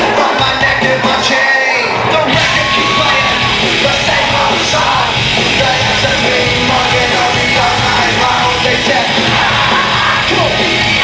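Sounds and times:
live pop-punk band playing: 0.0s - 11.0s
vocalist yelling and singing: 0.0s - 11.0s.

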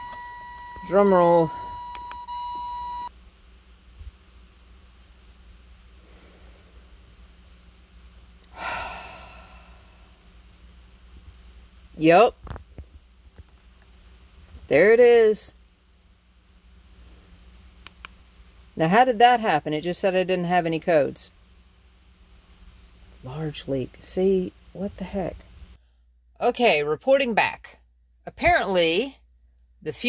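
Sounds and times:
steady electronic beep: 0.0s - 3.1s
faint low hum: 0.0s - 29.9s.

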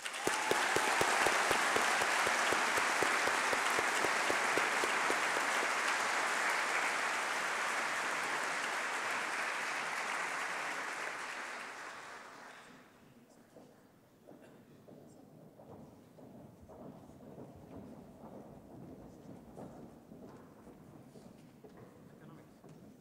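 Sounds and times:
audience applauding: 0.0s - 12.8s.

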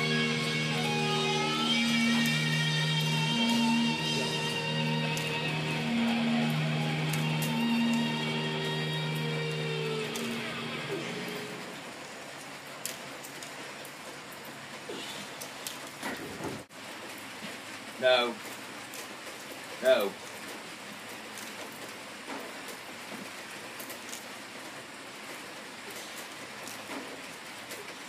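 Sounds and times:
guitar music with held notes: 0.0s - 11.6s
rain falling on a building: 0.0s - 28.0s.

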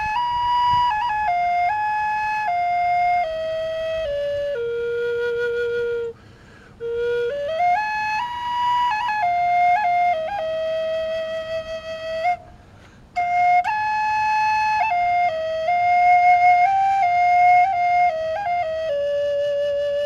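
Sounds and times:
drone flute slow melody: 0.0s - 20.0s.

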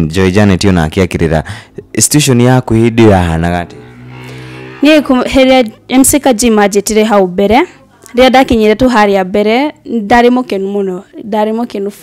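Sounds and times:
woman speaking: 4.8s - 12.0s.

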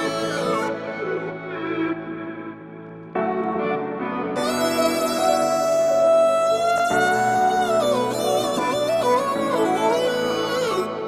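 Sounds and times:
slow melodic music: 0.0s - 11.0s.

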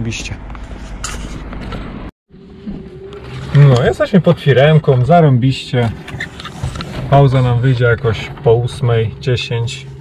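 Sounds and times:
faint cab hum: 0.0s - 10.0s.

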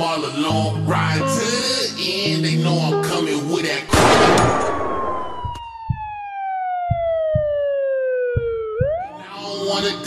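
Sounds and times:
crash-like burst: 3.9s - 5.4s
low thumps: 3.9s - 9.1s
falling siren-like tone: 4.5s - 9.3s.

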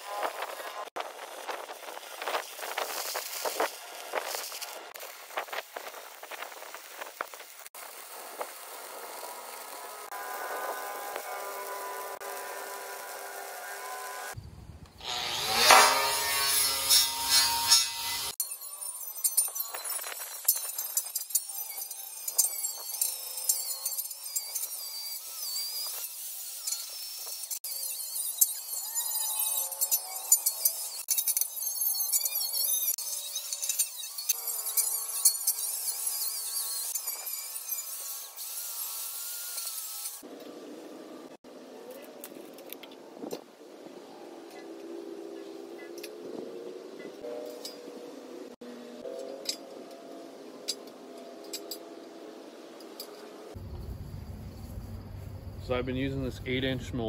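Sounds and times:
arc welding crackling: 0.0s - 14.4s, 15.0s - 40.4s
angle grinder on steel: 7.6s - 14.4s, 15.0s - 40.4s.

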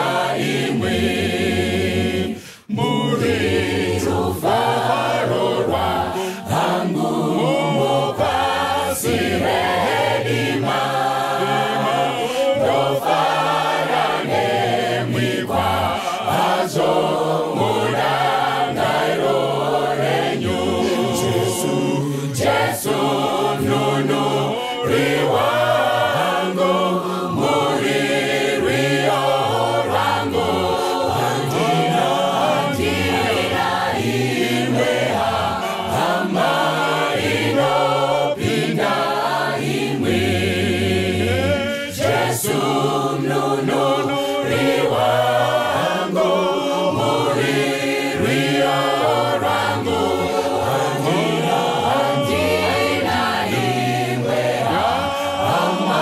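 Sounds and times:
choir singing gospel: 0.0s - 56.0s
men singing into microphones: 0.0s - 56.0s.

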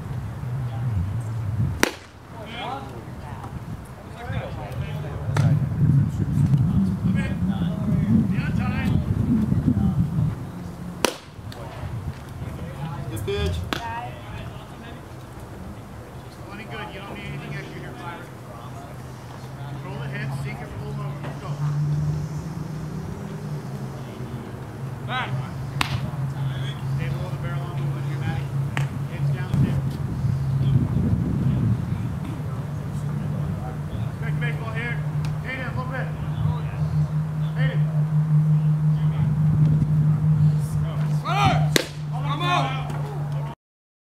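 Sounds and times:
steady low hum: 0.0s - 43.5s
faint voices: 0.0s - 43.6s
baseball hitting leather mitt: 1.8s - 2.3s, 11.0s - 12.4s, 13.5s - 13.9s, 25.8s - 26.1s, 41.7s - 42.1s.

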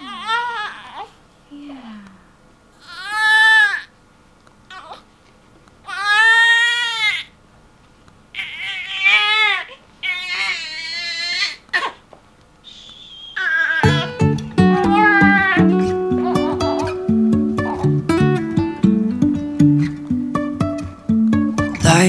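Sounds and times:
newborn baby crying: 0.0s - 1.2s, 2.8s - 4.0s, 4.7s - 5.1s, 5.8s - 7.4s, 8.3s - 12.1s, 13.1s - 17.0s, 17.6s - 18.0s
guitar music: 13.8s - 22.0s.

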